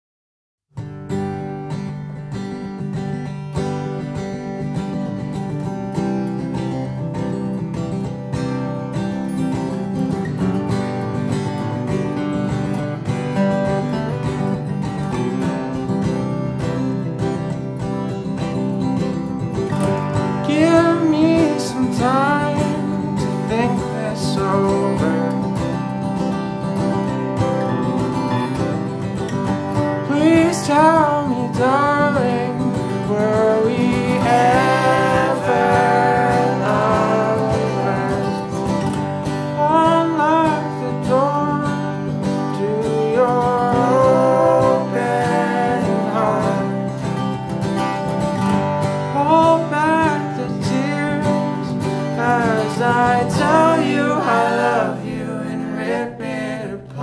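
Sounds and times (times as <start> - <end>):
acoustic guitars strumming: 0.8 - 57.0
sliding melodic lead line: 1.2 - 56.6.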